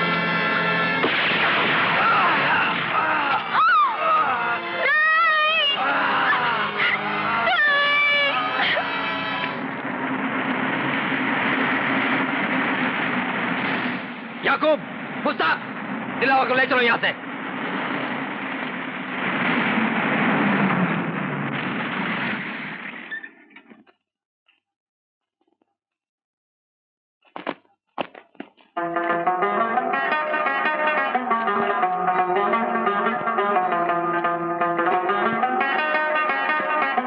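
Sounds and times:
man screaming in pain: 2.0 - 4.7
car engine rumbling: 5.6 - 22.2.

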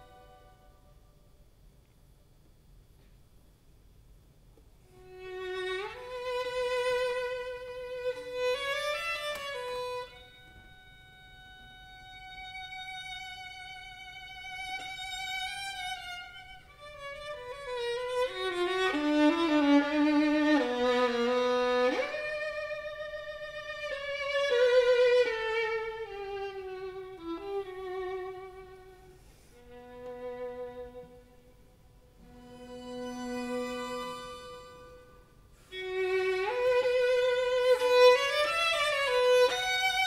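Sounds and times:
string ensemble playing slowly: 0.0 - 0.9, 4.9 - 40.0.

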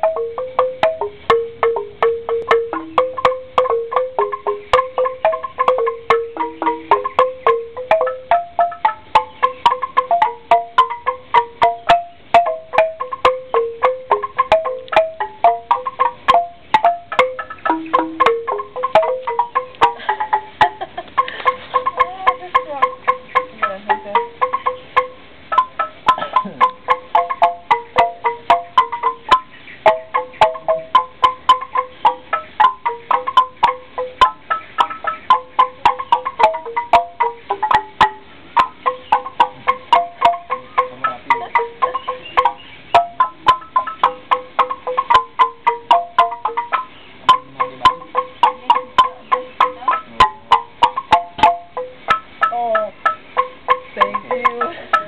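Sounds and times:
bamboo xylophones struck with mallets: 0.0 - 55.0.

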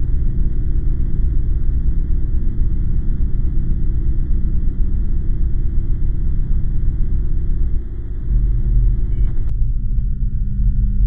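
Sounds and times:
dark ambient drone: 0.0 - 11.0.

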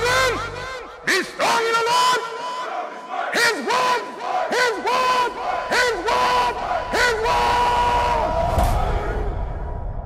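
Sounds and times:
crowd shouting in unison: 0.0 - 9.5.

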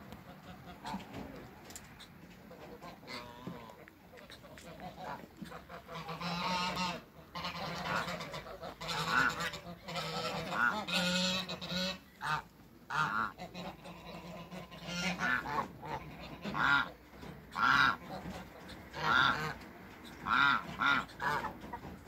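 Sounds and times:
goose honking: 0.1 - 1.4, 2.0 - 22.0.

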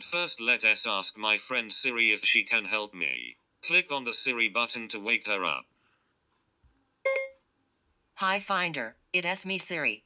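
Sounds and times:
short electronic beep: 7.1 - 7.4.

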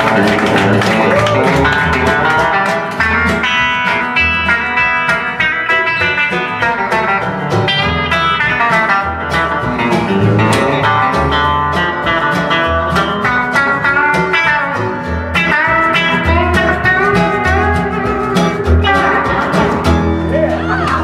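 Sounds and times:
electric guitar lead: 0.0 - 21.0
live blues-country band: 0.0 - 21.0.

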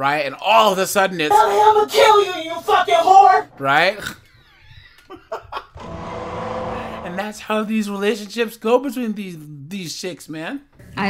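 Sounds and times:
man laughing: 4.5 - 5.8.

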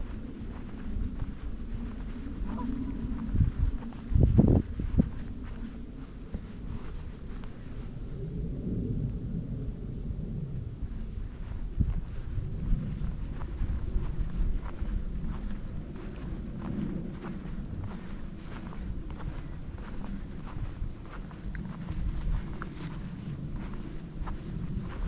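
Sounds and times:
footsteps walking: 0.0 - 8.0, 11.0 - 25.0
steady low rumble: 0.0 - 25.0.

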